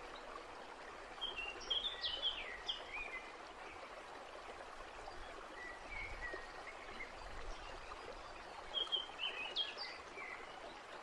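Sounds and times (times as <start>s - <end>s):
flowing stream: 0.0s - 11.0s.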